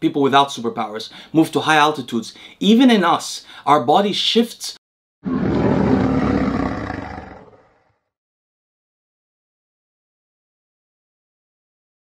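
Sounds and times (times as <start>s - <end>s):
lion roaring: 5.2s - 8.0s.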